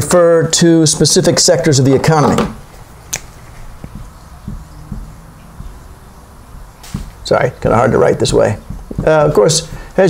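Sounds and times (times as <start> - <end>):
marker knocking on whiteboard: 2.2 - 10.0.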